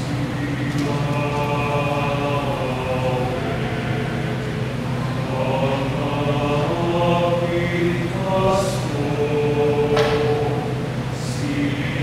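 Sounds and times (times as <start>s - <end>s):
mixed choir singing sacred song: 0.0s - 12.0s.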